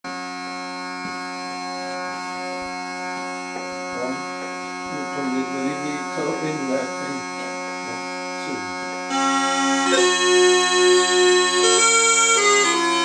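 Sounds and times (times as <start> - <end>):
bagpipe drones: 0.1 - 13.0.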